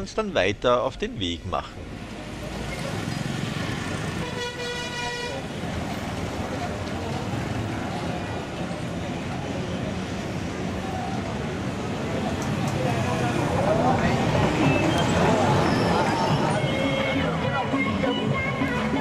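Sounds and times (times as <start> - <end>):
street traffic: 0.0 - 19.0
motorbikes passing: 1.7 - 19.0
vehicle horn toot: 4.2 - 5.4.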